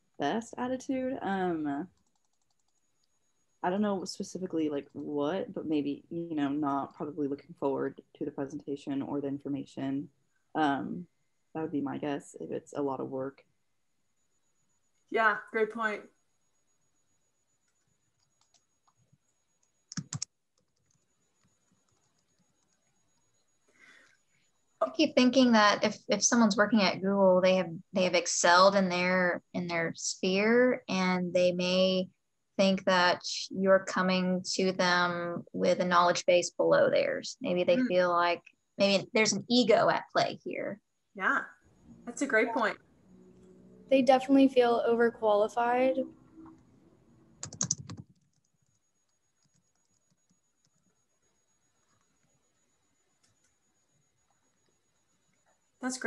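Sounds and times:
video call audio: 0:00.0 - 0:01.9, 0:03.6 - 0:11.0, 0:11.6 - 0:13.4, 0:15.2 - 0:16.0, 0:19.9 - 0:20.3, 0:24.8 - 0:48.2
keyboard typing: 0:01.7 - 0:02.8, 0:17.7 - 0:19.0, 0:19.6 - 0:22.8, 0:47.4 - 0:50.9
keyboard key clicks: 0:19.9 - 0:20.3, 0:47.4 - 0:48.2.

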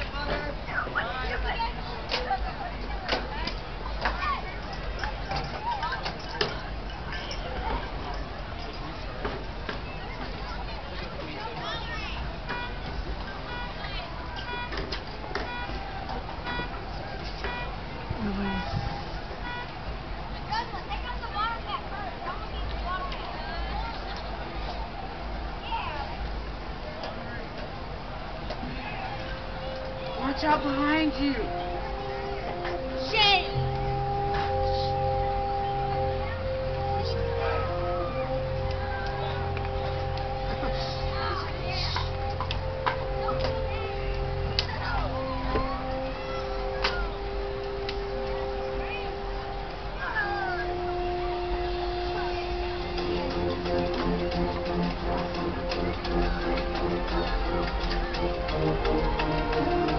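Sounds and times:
crowd chatter: 0:00.0 - 0:59.9
car alarm chirping: 0:13.4 - 0:18.8, 0:19.4 - 0:19.7
steady tone at fixed pitches: 0:29.0 - 0:59.9.

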